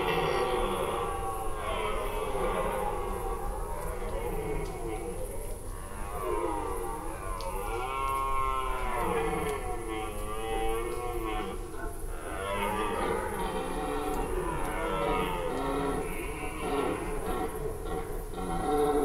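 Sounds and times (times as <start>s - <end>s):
deer stags roaring: 12.2s - 19.0s.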